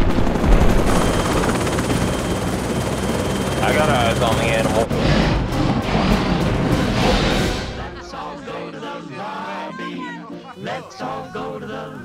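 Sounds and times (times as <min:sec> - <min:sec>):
helicopter engine and rotor drone: 0:00.0 - 0:07.0.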